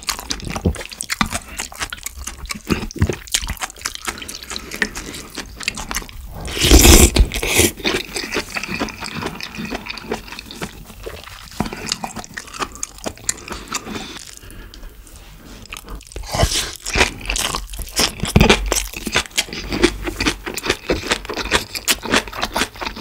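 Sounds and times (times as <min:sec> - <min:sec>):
chewing crunchy vegetables: 0:00.0 - 0:23.0.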